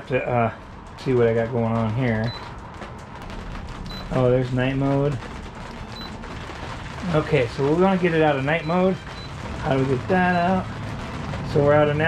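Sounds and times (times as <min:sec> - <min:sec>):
rain pattering on boat enclosure: 0:00.0 - 0:12.0.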